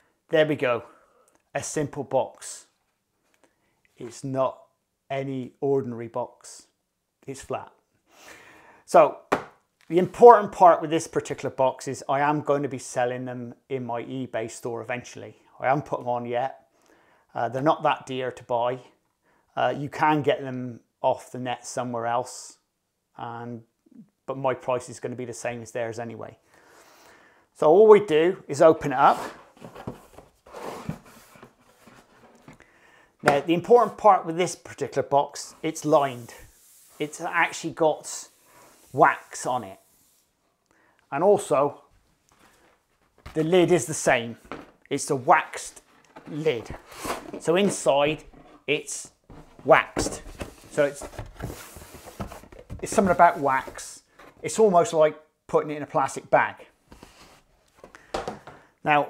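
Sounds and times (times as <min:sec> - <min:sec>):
cardboard rustling and scraping: 0:28.8 - 0:32.6, 0:44.4 - 0:54.6.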